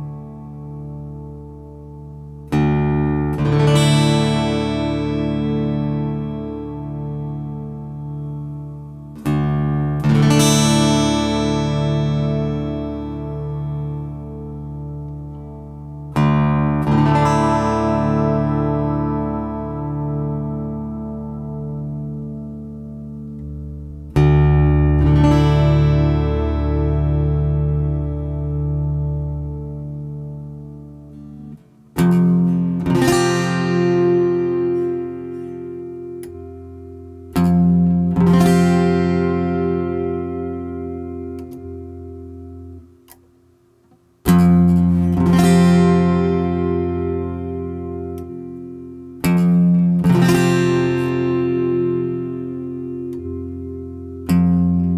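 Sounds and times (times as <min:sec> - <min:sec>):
acoustic guitar chords strummed: 0:00.0 - 0:54.9.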